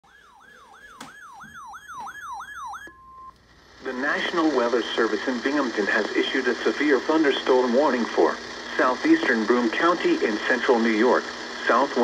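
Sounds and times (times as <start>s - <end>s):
falling siren sweep: 0.0s - 3.3s.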